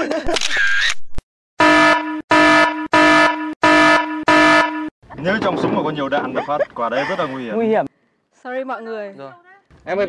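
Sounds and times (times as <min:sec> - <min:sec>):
loud buzzer blasts: 0:01.6 - 0:04.9.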